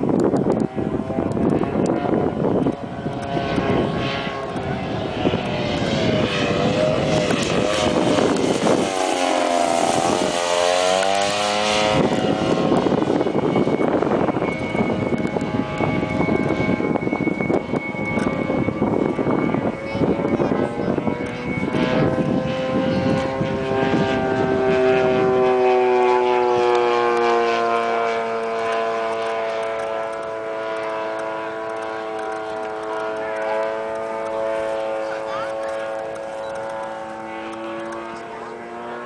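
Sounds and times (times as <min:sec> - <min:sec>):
model airplane engine drone: 0:00.0 - 0:39.0.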